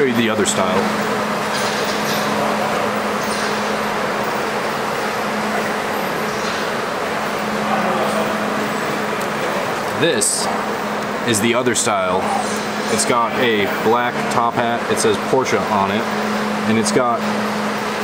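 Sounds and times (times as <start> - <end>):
low mechanical hum: 0.0 - 18.0.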